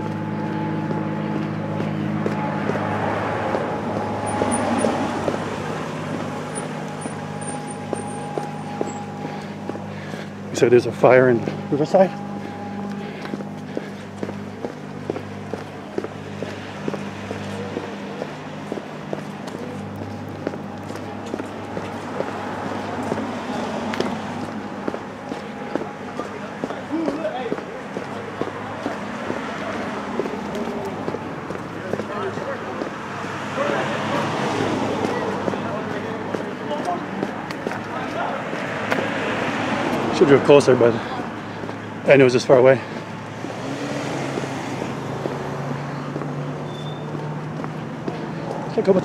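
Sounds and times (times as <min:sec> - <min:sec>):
engine hum: 0:00.0 - 0:49.0
indistinct voices: 0:00.0 - 0:49.0
traffic noise: 0:00.0 - 0:49.0.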